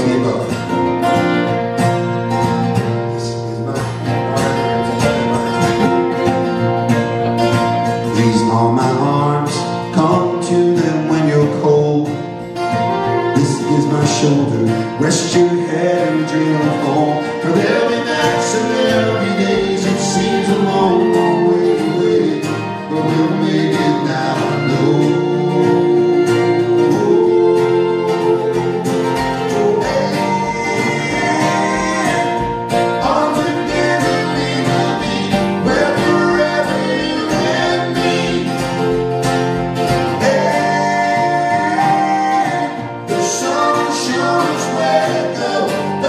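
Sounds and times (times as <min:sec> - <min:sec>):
man singing: 0:00.0 - 0:00.7, 0:03.1 - 0:06.0, 0:07.9 - 0:39.2, 0:39.8 - 0:46.0
plucked strings: 0:00.0 - 0:46.0
strummed acoustic guitar: 0:00.0 - 0:46.0.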